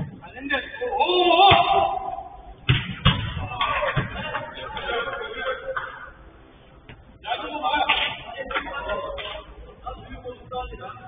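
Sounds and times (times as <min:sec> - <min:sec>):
players shouting: 0:00.9 - 0:02.5.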